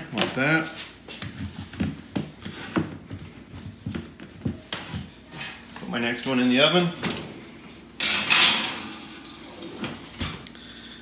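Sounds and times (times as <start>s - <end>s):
metal oven rack scraping rattle: 8.0s - 10.2s.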